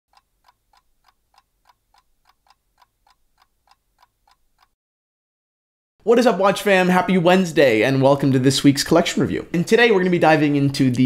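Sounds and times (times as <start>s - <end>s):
clock ticking: 0.1s - 4.8s.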